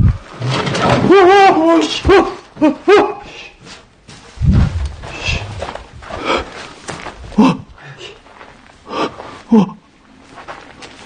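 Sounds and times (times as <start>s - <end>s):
low thud: 4.4s - 6.1s
person wailing: 7.3s - 8.0s.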